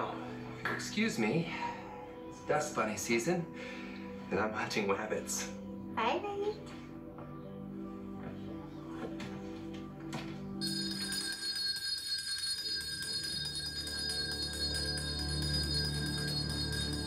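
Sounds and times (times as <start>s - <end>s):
film soundtrack music: 0.0s - 10.6s
hand bell ringing: 10.6s - 17.0s.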